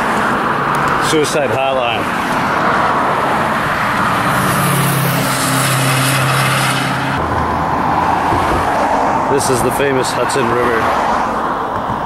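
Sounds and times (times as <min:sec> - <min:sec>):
vehicle passing by: 0:00.0 - 0:11.6
tyre noise of traffic: 0:00.0 - 0:12.0.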